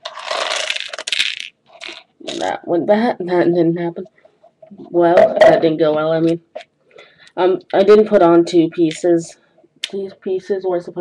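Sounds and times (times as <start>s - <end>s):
plastic pieces rattling in metal tin: 0.0s - 2.4s.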